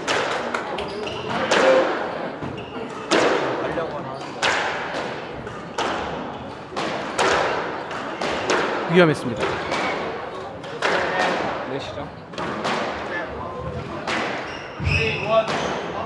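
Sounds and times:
squash ball hits: 0:00.0 - 0:02.0, 0:02.9 - 0:11.6, 0:12.3 - 0:16.0.

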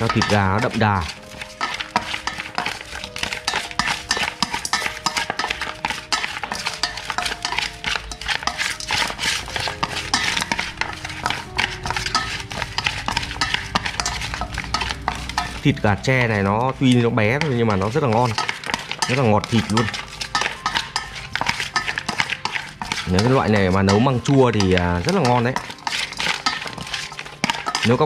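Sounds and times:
chopsticks clattering in metal basin: 0:00.0 - 0:28.0.

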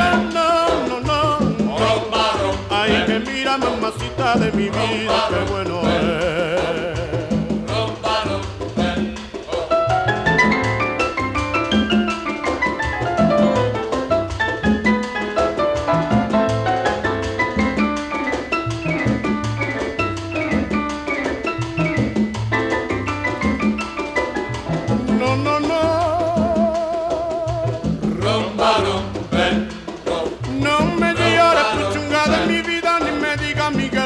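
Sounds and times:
rumba dance band music: 0:00.0 - 0:34.0.

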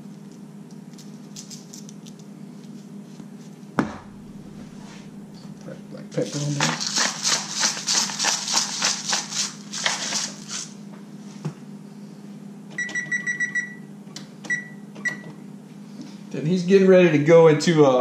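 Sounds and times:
seasoning shaker rattling: 0:00.9 - 0:02.3, 0:06.2 - 0:10.8.

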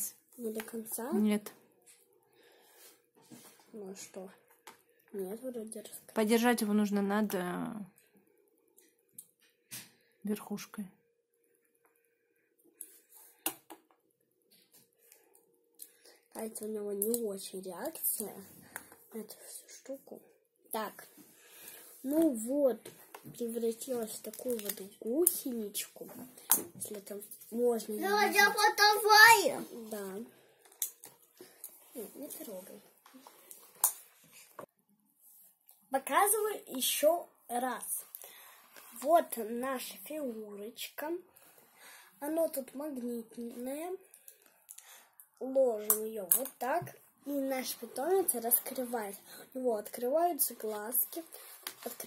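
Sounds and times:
plastic toy rustling: 0:22.0 - 0:26.3, 0:49.8 - 0:52.0.

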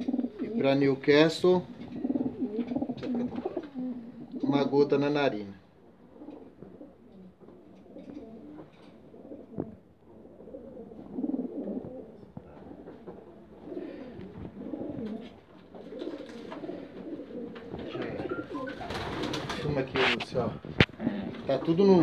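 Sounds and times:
pigeons cooing: 0:00.0 - 0:04.8, 0:05.8 - 0:21.5.

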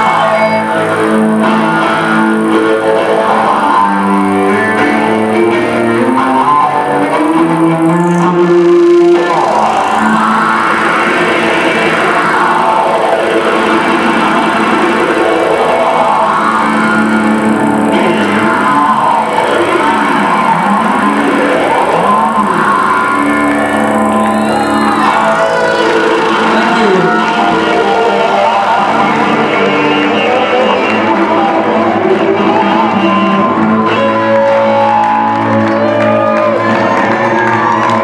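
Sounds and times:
electric guitar sweeping in pitch: 0:00.0 - 0:38.0.

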